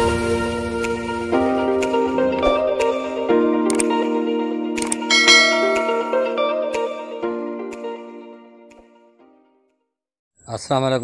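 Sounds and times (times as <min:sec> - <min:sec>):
bright bell-like chime: 0:05.1 - 0:06.9.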